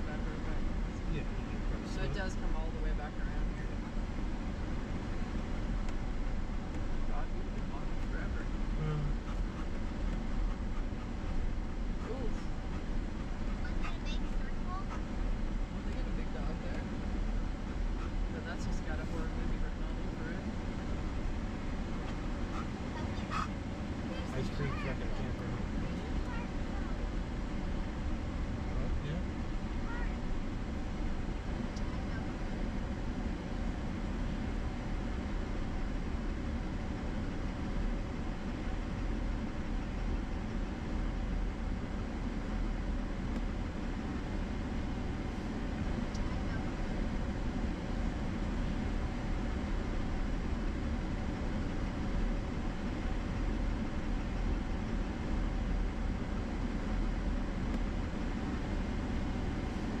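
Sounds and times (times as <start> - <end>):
truck engine: 0.0 - 60.0.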